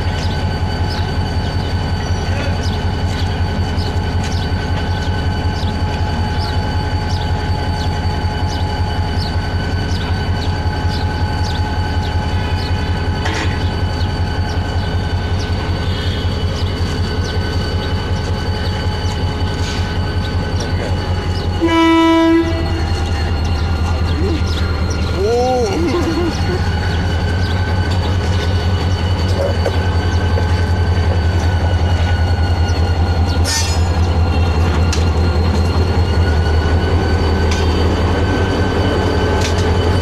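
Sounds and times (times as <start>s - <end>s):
locomotive engine rumbling: 0.0s - 40.0s
train horn blast: 21.6s - 23.2s.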